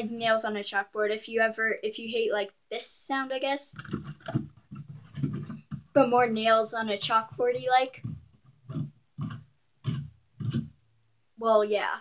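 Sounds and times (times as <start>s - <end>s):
rough scratching on a surface: 3.7s - 10.8s.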